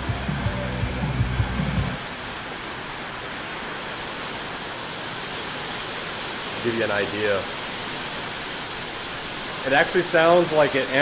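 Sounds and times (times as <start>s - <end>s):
radio playing music: 0.0s - 2.0s
rain on a metal roof: 0.0s - 11.0s.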